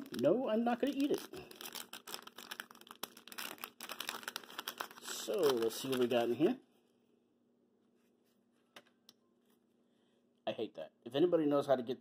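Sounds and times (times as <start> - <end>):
wax paper wrapper crinkling: 0.0 - 6.6.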